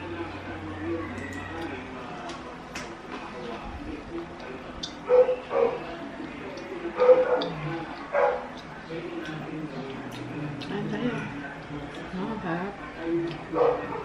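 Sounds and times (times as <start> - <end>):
murmur of voices: 0.0 - 14.0
dog barking: 5.1 - 5.8, 7.0 - 7.5, 8.2 - 8.5, 13.5 - 14.0.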